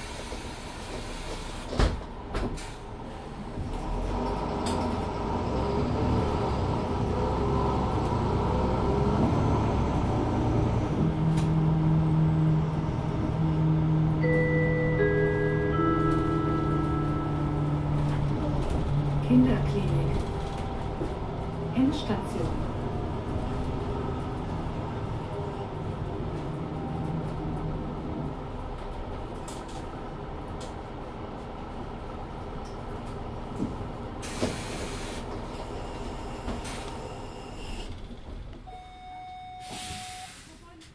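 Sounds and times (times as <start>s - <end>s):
bus diesel engine humming: 0.0s - 40.9s
air hisses: 39.6s - 40.6s.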